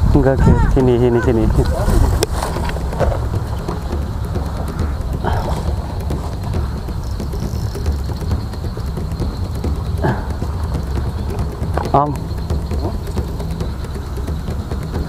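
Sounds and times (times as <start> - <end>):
faint crackles: 0.0 - 15.0
wind rumble on microphone: 0.0 - 15.0.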